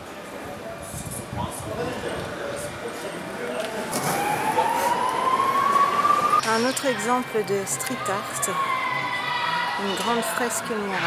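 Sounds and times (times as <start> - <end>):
city street noise: 0.0 - 11.0
siren rising in pitch: 4.0 - 6.5.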